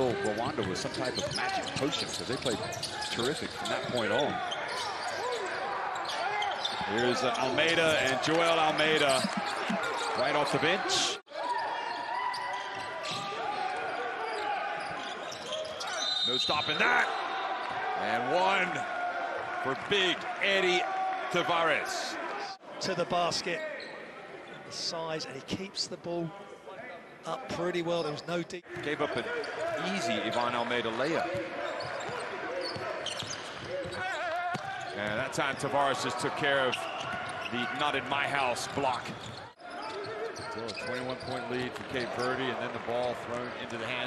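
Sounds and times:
players' voices: 0.0s - 11.2s, 17.8s - 44.0s.

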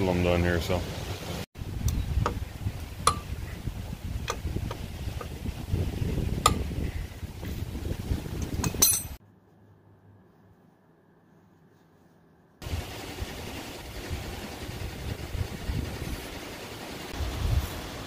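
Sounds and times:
wind on microphone: 1.6s - 9.2s, 14.0s - 16.4s, 17.1s - 18.0s
metal clinks: 8.4s - 9.2s.

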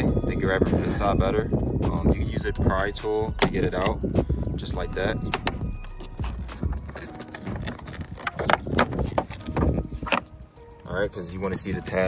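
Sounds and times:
plastic tool clicking on mirror housing: 5.3s - 5.8s.

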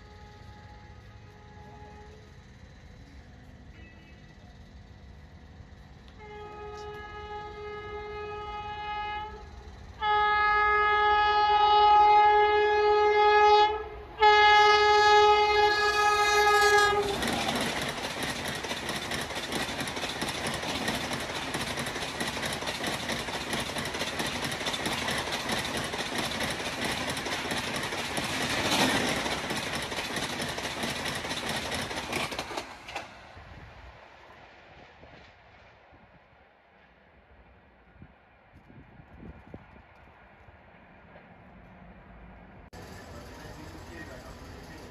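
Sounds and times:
locomotive horn blasts: 0.0s - 2.4s, 6.2s - 17.4s
train rushing past: 4.2s - 44.9s
wheel clatter over rails: 16.9s - 33.4s, 42.8s - 44.9s.

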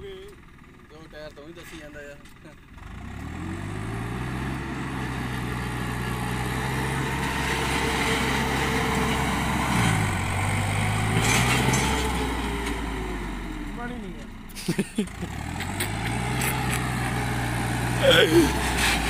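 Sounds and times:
tractor engine revving: 2.4s - 19.0s.

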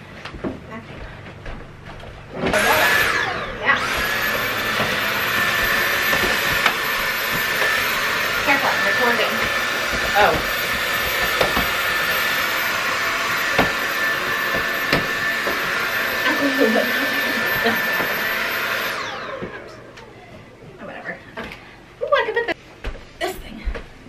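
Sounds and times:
stick vacuum whining: 2.2s - 20.8s.

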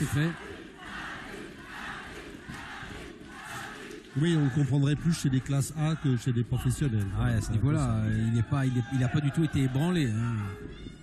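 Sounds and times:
crowd shouting and cheering: 0.0s - 11.0s.

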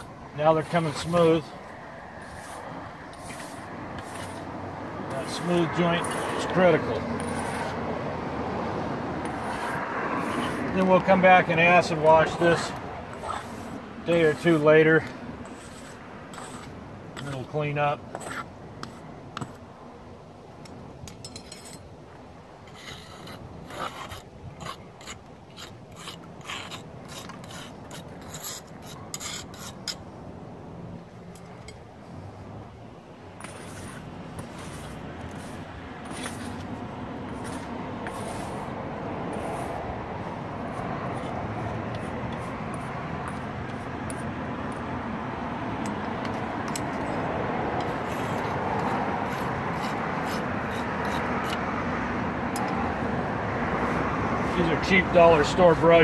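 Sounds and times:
mortar striker scraping brick joints: 0.0s - 1.6s, 2.2s - 4.5s, 5.1s - 7.8s, 9.2s - 19.7s, 20.7s - 21.9s, 22.6s - 30.1s, 33.4s - 39.8s, 40.6s - 44.9s, 45.8s - 51.7s
steady background noise: 0.0s - 56.0s.

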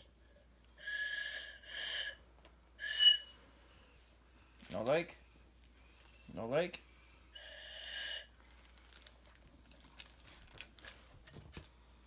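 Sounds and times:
breathy plastic whistle: 0.7s - 2.2s, 2.8s - 3.5s, 7.4s - 8.4s.

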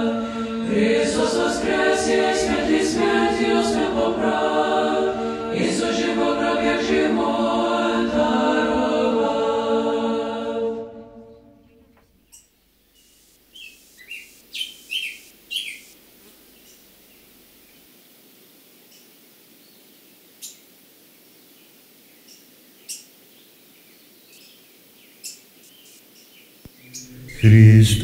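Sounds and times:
robins chirping: 11.7s - 28.0s.

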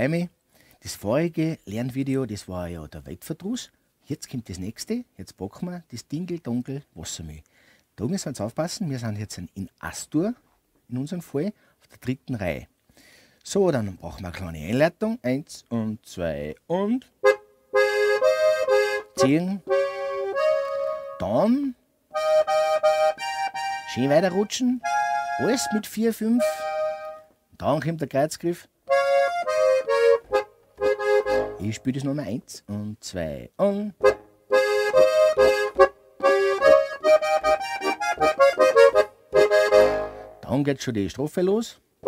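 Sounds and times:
button accordion playing chords: 17.2s - 21.5s, 22.1s - 27.3s, 28.9s - 31.9s, 34.0s - 40.4s.

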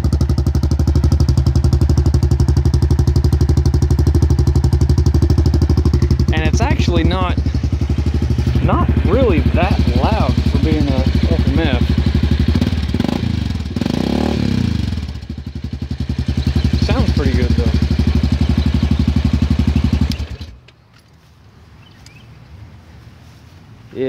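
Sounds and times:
atv engine idling: 0.0s - 20.7s.

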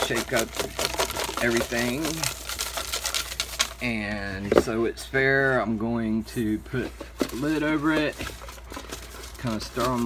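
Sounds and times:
paper slips rattling in a box: 0.0s - 4.0s, 6.9s - 10.0s.

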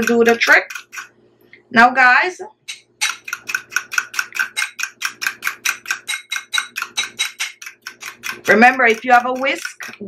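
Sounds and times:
fork whisking in glass bowl: 0.0s - 1.2s, 2.7s - 10.0s.

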